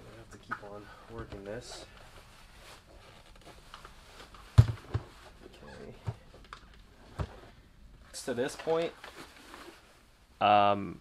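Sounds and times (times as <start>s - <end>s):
handling rustle: 8.1s - 10.0s.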